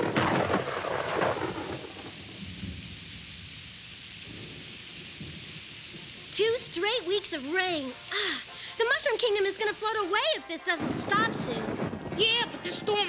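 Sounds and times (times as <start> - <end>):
heavy rain hissing: 0.0 - 13.0
thunder rumbling: 0.0 - 13.0.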